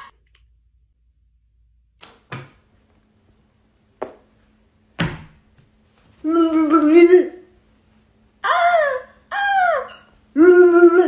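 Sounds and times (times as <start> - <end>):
woman squealing: 8.4 - 11.0.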